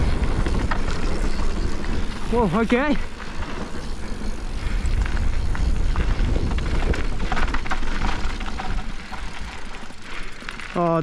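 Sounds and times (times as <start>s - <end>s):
wind buffeting microphone: 0.0s - 10.2s
bike rattling: 0.0s - 11.0s
tyres crunching on gravel: 0.0s - 11.0s.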